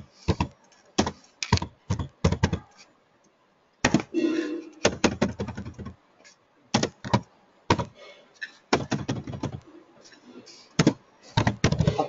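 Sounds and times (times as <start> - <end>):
computer keyboard typing: 4.8 - 5.9.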